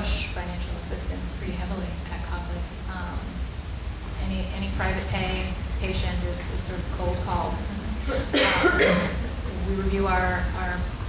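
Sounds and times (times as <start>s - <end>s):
person speaking: 4.2s - 11.0s
person coughing: 8.0s - 9.4s.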